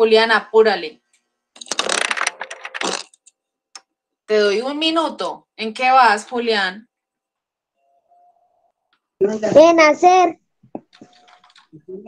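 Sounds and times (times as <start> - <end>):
rapid clicking and rustling: 10.9 - 11.7.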